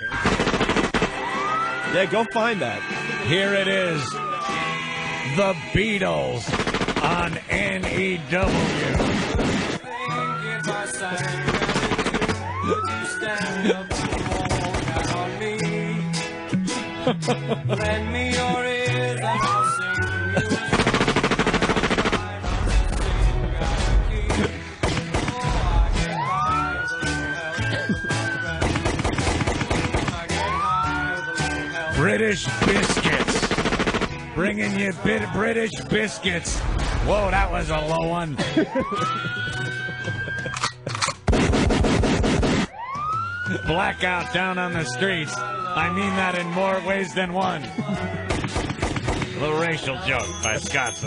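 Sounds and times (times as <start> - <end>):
siren winding up: 0.0 - 6.2, 9.7 - 15.6, 19.2 - 21.6, 26.0 - 28.6, 30.2 - 33.2, 38.7 - 41.2, 42.6 - 48.4
rock music: 0.0 - 51.0
machine-gun fire: 0.1 - 1.2, 6.4 - 9.9, 11.4 - 12.4, 13.9 - 15.1, 20.7 - 22.4, 24.2 - 25.7, 28.6 - 30.2, 32.6 - 34.2, 41.3 - 42.7, 48.3 - 49.4.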